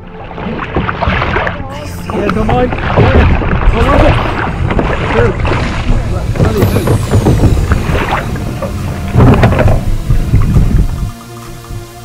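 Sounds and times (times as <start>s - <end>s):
kayak paddle strokes: 0.0s - 12.0s
water splashing: 0.0s - 12.0s
wind buffeting microphone: 2.3s - 11.9s.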